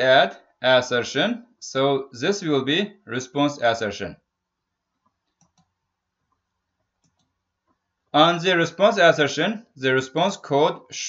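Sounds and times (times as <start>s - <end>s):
computer mouse clicks: 5.2s - 5.8s, 7.0s - 7.4s.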